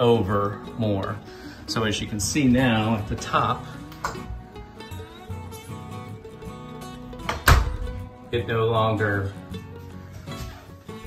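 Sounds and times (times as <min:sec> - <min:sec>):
guitar music: 0:00.0 - 0:11.0
door shutting thunk: 0:07.3 - 0:08.0.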